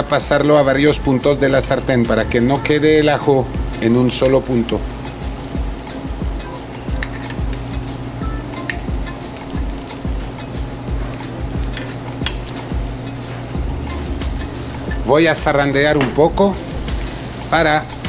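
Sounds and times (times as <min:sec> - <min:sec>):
fish sizzling in a frying pan: 0:00.5 - 0:18.0
metal spoon tapping and scraping pan: 0:11.7 - 0:12.6.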